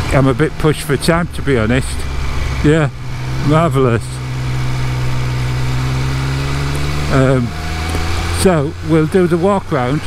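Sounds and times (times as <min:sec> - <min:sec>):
motorcycle engine at low revs: 0:00.0 - 0:10.0
wind and road noise: 0:00.0 - 0:10.0.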